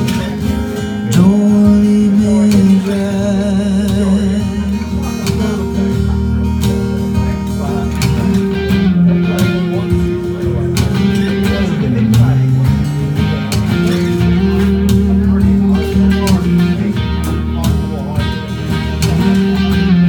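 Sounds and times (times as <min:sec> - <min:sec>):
electric guitar chords: 0:00.0 - 0:20.0
low bass line: 0:00.0 - 0:20.0.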